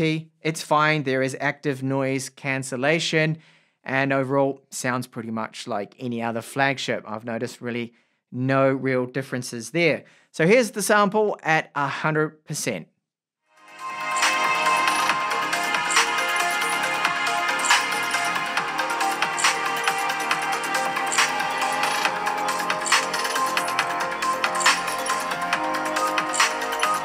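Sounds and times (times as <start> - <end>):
electronic beat music on loudspeakers: 13.7 - 27.0.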